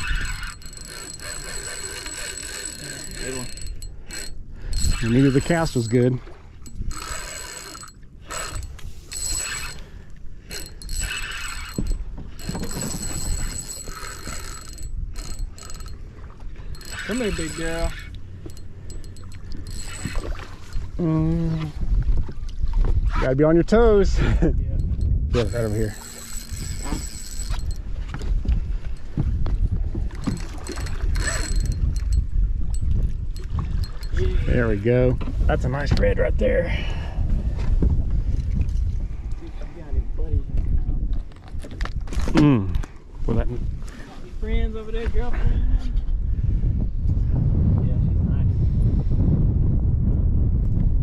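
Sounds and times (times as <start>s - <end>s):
fishing reel whirring: 0.0s - 21.2s, 24.8s - 28.2s, 30.2s - 34.2s
wind buffeting microphone: 0.0s - 51.0s.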